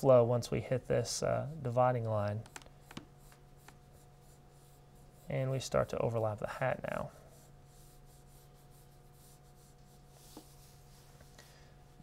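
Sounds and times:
faint room hum: 0.0 - 12.0
pencil scratching on paper: 2.9 - 5.4, 7.2 - 11.0.

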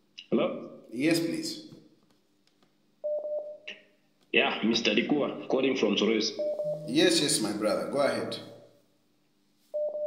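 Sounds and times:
electronic telephone beep: 3.0 - 3.6, 6.4 - 6.9, 9.8 - 10.0.

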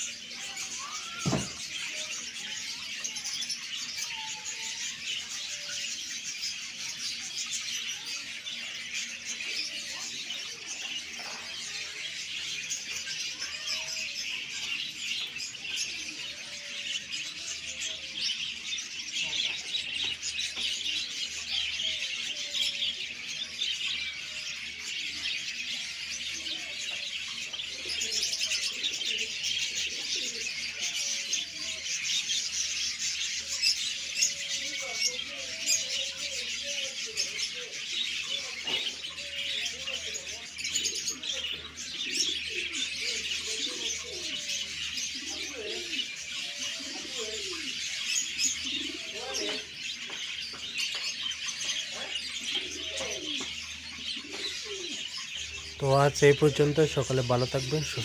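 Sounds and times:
many birds chirping: 0.0 - 58.0
short falling bird cry: 0.7 - 2.0.

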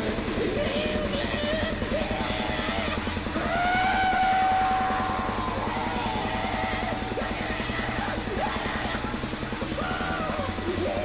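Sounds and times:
distorted guitar: 0.0 - 11.0
fast dense drumming: 0.0 - 11.0.

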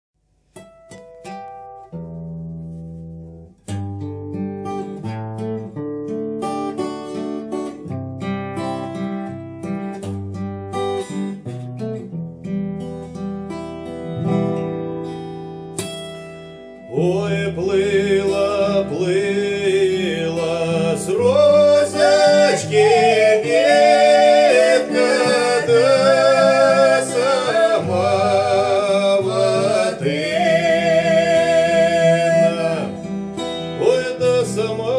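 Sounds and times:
acoustic guitar playing folk song: 0.2 - 34.9
man and woman singing: 16.9 - 34.9.

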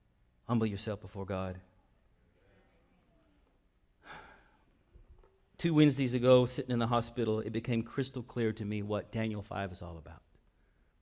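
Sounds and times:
man breathing: 4.0 - 4.9, 10.5 - 11.0.

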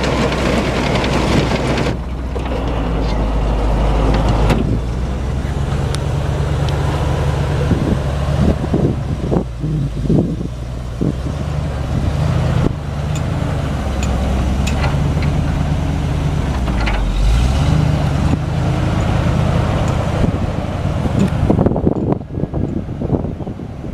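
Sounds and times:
truck engine droning: 0.0 - 23.9.

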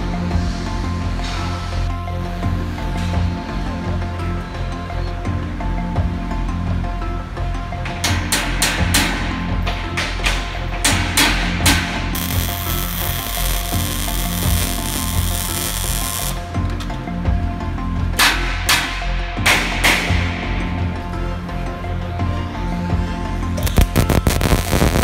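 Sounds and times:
background music: 0.0 - 25.0
welding arc hissing: 11.7 - 16.4, 23.6 - 25.0.

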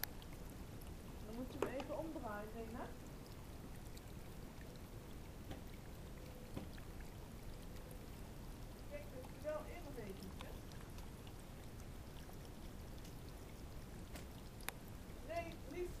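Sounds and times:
fountain water trickling: 0.0 - 16.0.

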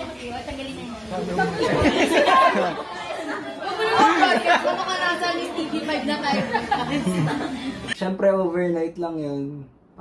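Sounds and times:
group chatter: 0.0 - 8.0.

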